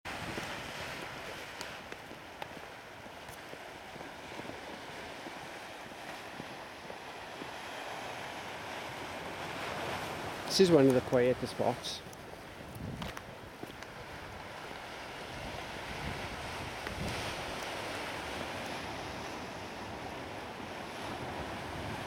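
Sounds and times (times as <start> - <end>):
surf washing against rocks: 0.1 - 22.0
wind on microphone: 0.1 - 22.0.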